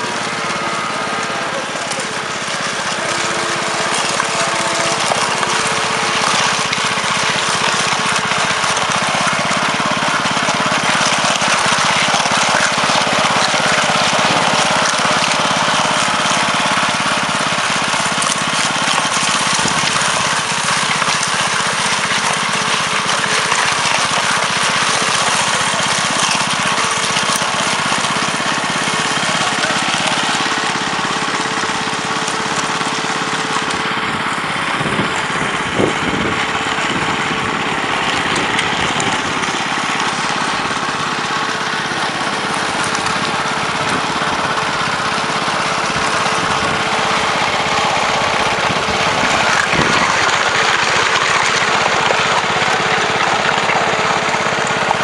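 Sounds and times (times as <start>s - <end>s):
petrol engine running steadily: 0.0s - 55.0s.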